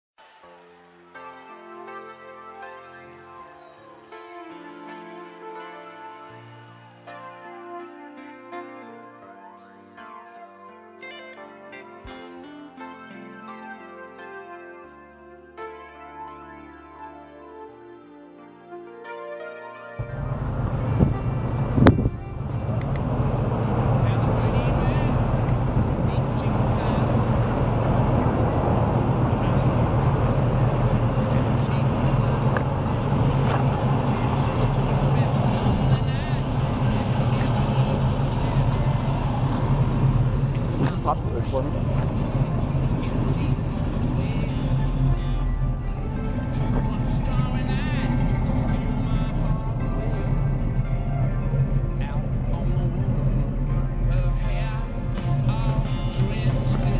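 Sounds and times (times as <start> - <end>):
car engine idling: 20.1 - 56.9.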